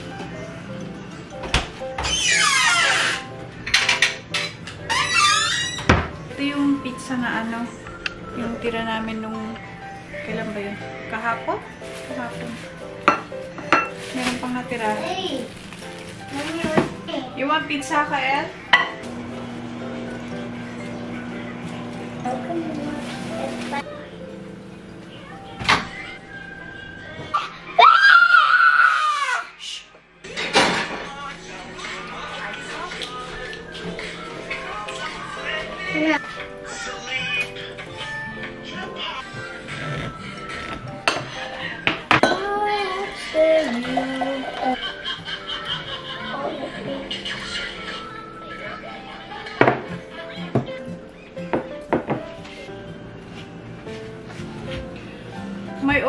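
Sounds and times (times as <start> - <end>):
soft background music: 0.0 - 56.0
cabinet door squeaking open: 2.0 - 3.3, 4.4 - 6.2, 25.6 - 26.3
dishes clinking: 3.6 - 4.9, 13.0 - 14.0, 18.7 - 19.1, 41.0 - 42.5
boy squealing: 27.8 - 29.6.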